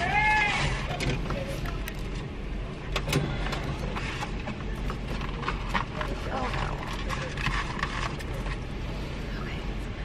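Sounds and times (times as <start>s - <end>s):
rustling and clicking inside car: 0.8s - 8.9s.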